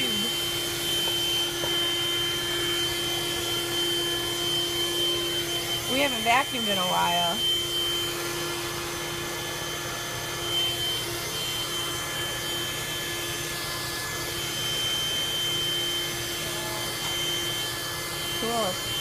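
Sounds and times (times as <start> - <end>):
handheld vacuum motor running: 0.0 - 19.0.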